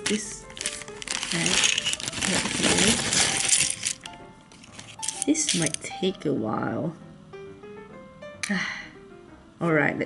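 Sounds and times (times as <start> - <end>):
small plastic pieces clattering: 0.0 - 5.8
faint background music: 0.0 - 10.0.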